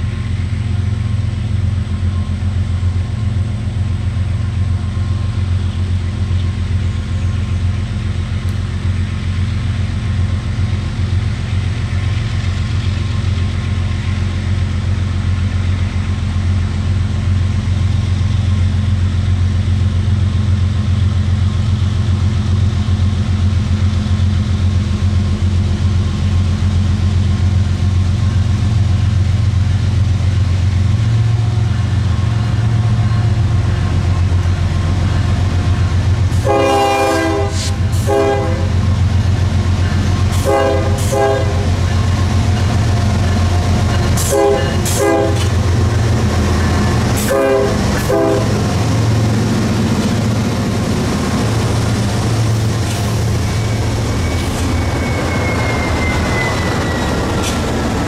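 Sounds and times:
diesel locomotive engine drone: 0.0 - 58.0
train air horn blasts: 36.3 - 38.8, 40.4 - 41.8, 44.2 - 45.6, 47.2 - 48.7.

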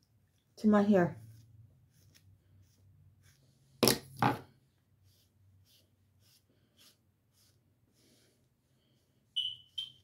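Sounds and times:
short high-pitched beeps: 9.4 - 10.0.

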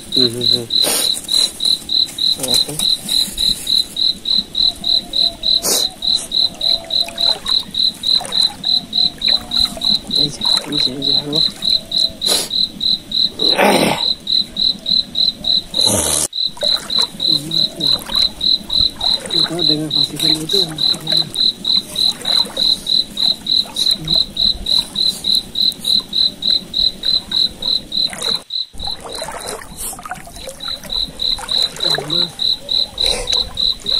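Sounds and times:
cricket chirping: 0.0 - 33.9.

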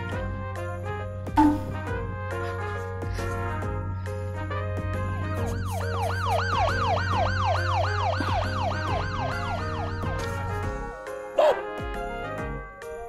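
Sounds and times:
background music: 0.0 - 13.0
wailing siren-like effect: 5.2 - 10.7.

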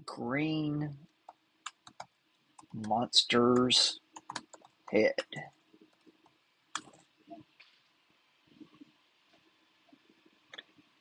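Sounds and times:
computer keyboard clicks: 1.6 - 2.9, 4.2 - 4.8, 6.7 - 7.0.

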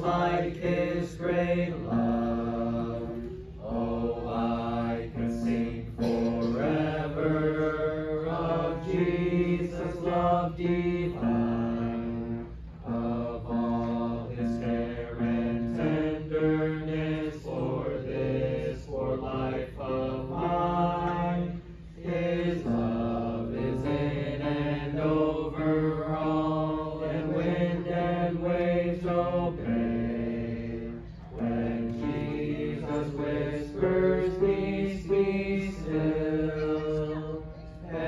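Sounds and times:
small group singing a hymn: 0.0 - 38.0.

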